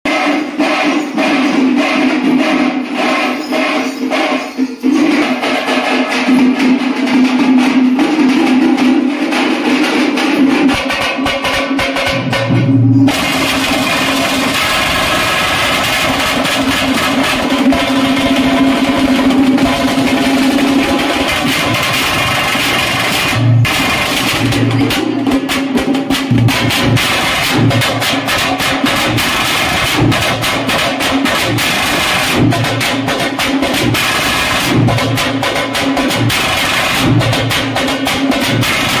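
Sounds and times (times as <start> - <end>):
drums beaten with sticks: 0.0 - 39.0.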